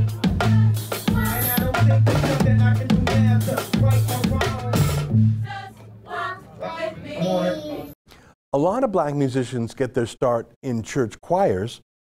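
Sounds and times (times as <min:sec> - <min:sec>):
gospel choir singing: 0:00.0 - 0:08.0.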